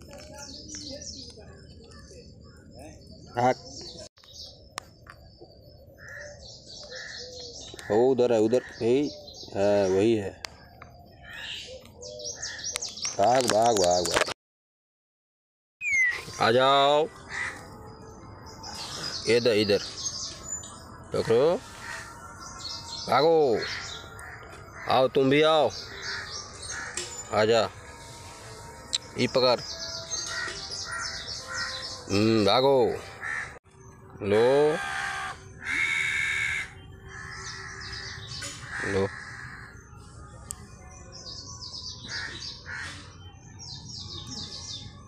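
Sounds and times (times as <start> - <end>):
bird call: 15.8 - 16.5
faint high bird chirps: 15.8 - 16.6
high bird chirping: 15.8 - 45.0
loud rough bird call: 34.4 - 39.7.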